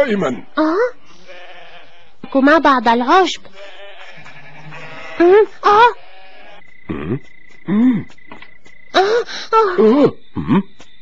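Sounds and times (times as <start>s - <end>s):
faint steady background noise: 0.0s - 10.9s
cartoon sheep bleat: 3.6s - 7.2s.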